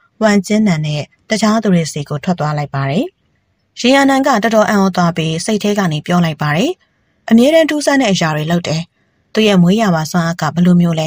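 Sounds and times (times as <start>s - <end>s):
person reading aloud: 0.2s - 3.1s, 3.8s - 11.0s.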